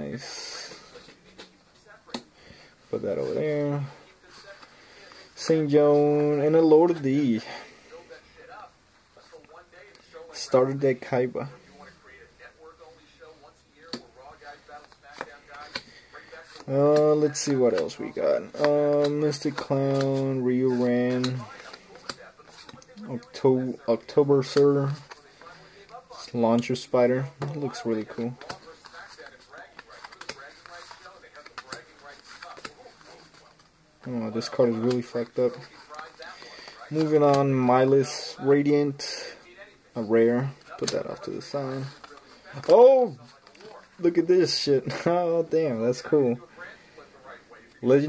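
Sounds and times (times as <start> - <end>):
trading cards being shuffled: 14.7 - 38.7, 40.0 - 45.2
trading cards being dealt: 16.5 - 23.3, 27.3 - 33.4.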